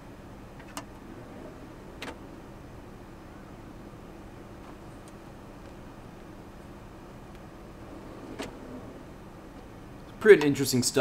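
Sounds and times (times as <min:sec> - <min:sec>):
steady low hum: 0:00.0 - 0:11.0
metal drawer sliding shut: 0:00.6 - 0:02.6, 0:07.6 - 0:09.7.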